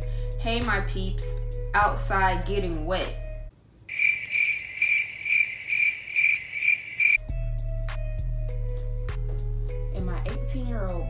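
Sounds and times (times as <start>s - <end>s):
background music: 0.0s - 3.5s, 7.2s - 11.0s
cricket chirping: 3.9s - 7.2s.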